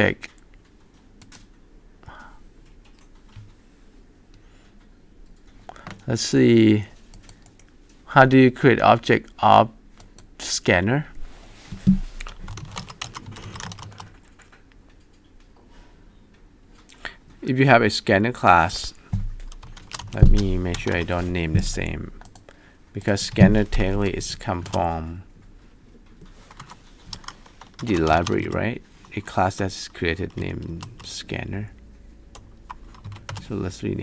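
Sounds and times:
man talking: 0.0 - 0.4, 6.0 - 7.0, 8.1 - 9.8, 17.4 - 19.0, 20.2 - 22.2, 23.0 - 25.3, 27.8 - 31.8, 33.4 - 34.0.

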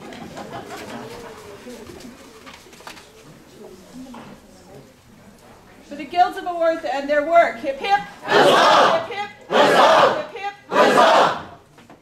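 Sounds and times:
murmured voices: 7.6 - 11.6.

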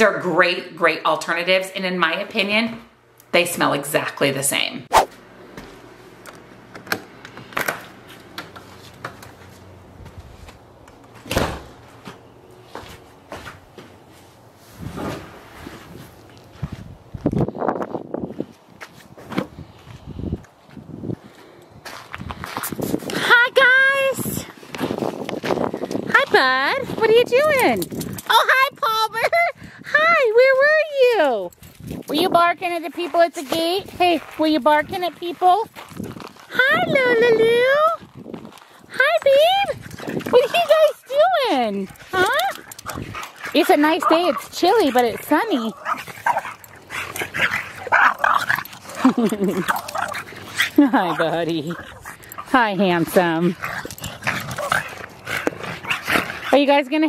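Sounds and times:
footsteps crunching on gravel: 15.6 - 23.1, 31.6 - 36.6, 37.4 - 38.9.

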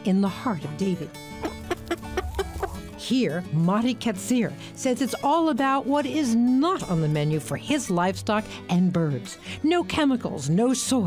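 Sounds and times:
background music: 0.0 - 11.0
chickens clucking: 1.3 - 2.9.

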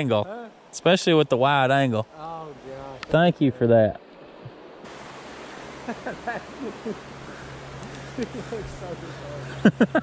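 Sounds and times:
creek water rushing: 0.0 - 10.0.

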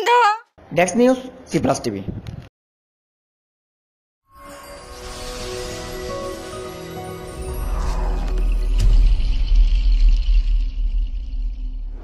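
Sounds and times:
deep low rumble: 7.4 - 12.0.

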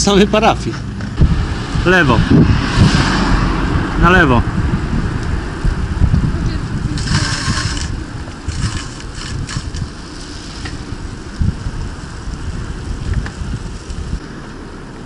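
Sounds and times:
wind rumbling on microphone: 0.2 - 15.0.

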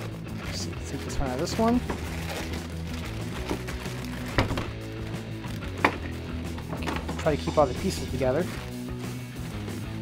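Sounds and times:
plastic bags crinkling: 0.0 - 6.2
background music: 0.0 - 10.0.

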